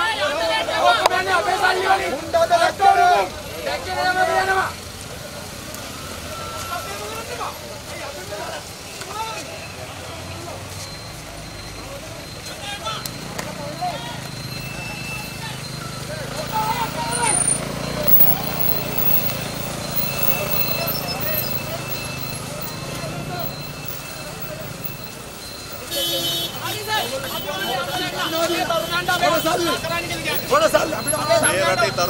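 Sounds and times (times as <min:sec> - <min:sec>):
crowd talking: 0:00.0 - 0:32.0
people's voices: 0:00.0 - 0:32.0
vehicle engines humming: 0:00.0 - 0:32.0
vehicle horn blast: 0:25.9 - 0:29.7.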